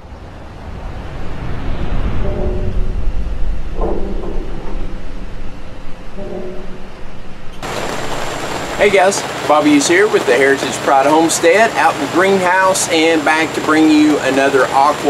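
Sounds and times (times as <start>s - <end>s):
deep rumble: 0.0s - 9.1s
short held tones: 6.0s - 7.6s
hard rain on a greenhouse roof: 7.6s - 15.0s.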